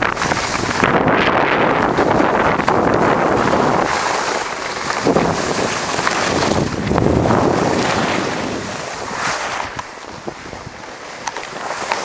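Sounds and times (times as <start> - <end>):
wind on microphone: 0.0 - 10.9
skis scraping on packed snow: 0.0 - 12.0.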